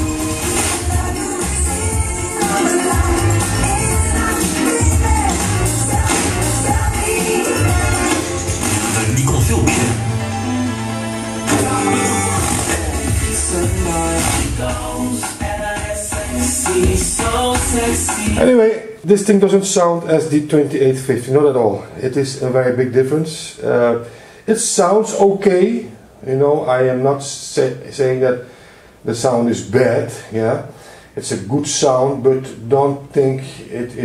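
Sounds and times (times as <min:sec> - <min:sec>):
pop music with singing: 0:00.0 - 0:18.8.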